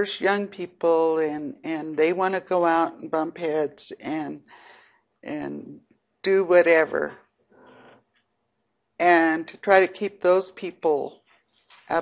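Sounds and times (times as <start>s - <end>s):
woman speaking: 0.0s - 4.5s, 5.2s - 7.3s, 9.0s - 11.2s, 11.8s - 12.0s
soft breath: 4.5s - 5.2s, 7.5s - 8.1s.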